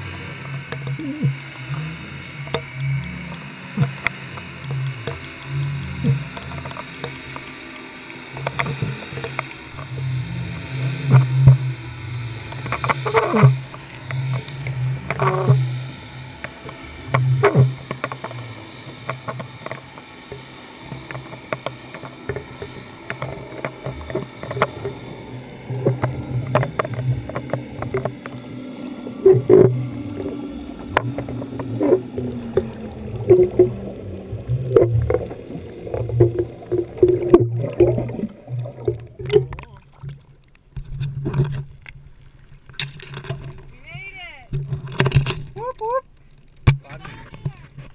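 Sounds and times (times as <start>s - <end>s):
faint tone sliding downward: 0.0s - 40.2s
low underwater rumble: 0.0s - 47.9s.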